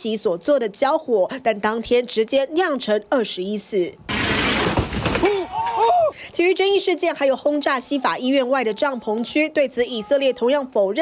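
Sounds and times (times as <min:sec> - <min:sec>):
debris shattering: 0:04.1 - 0:05.6
people shouting in alarm: 0:05.4 - 0:06.1, 0:09.8 - 0:10.6.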